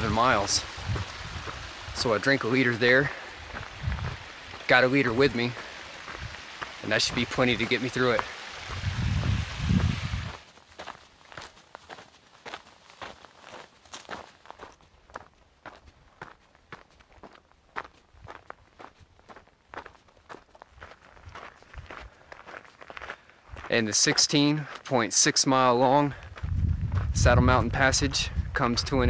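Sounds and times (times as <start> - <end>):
footsteps crunching on rocky trail: 0.0 - 28.1.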